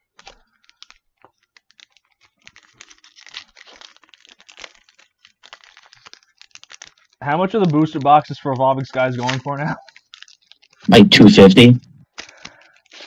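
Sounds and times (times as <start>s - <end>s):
foil pack crinkling: 0.0s - 10.9s, 12.1s - 13.0s
foil pack tearing open: 0.1s - 8.4s, 9.2s - 10.9s, 12.2s - 13.0s.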